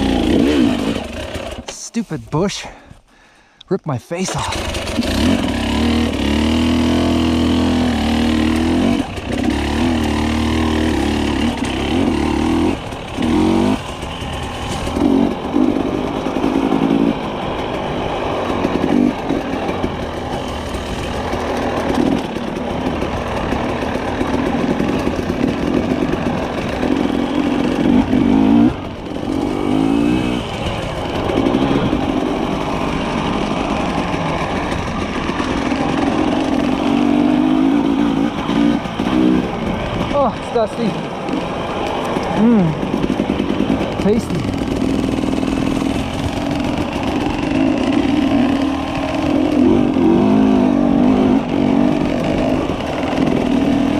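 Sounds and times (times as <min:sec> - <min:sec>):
dirt bike engine revving: 0:00.0 - 0:02.7, 0:04.2 - 0:53.9.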